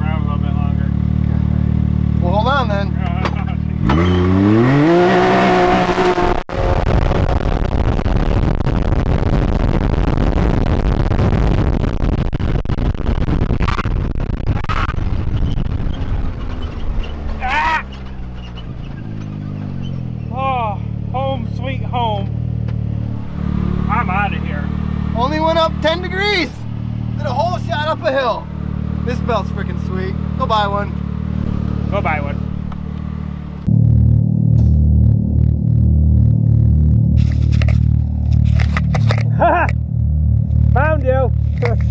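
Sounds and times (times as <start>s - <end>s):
gravel noise: 0.0s - 41.9s
turbocharged engine running loud: 0.0s - 41.9s
wind noise: 3.8s - 20.3s.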